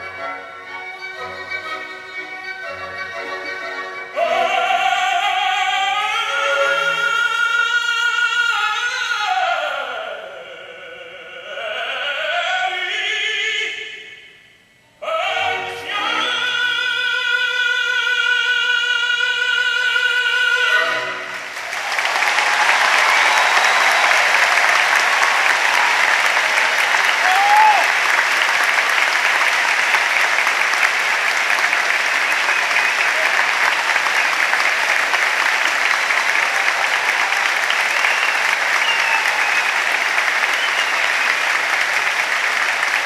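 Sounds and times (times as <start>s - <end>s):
audience calls: 20.7s - 43.0s
audience applauding: 20.8s - 43.0s
whistles: 32.2s - 33.3s, 37.7s - 41.6s.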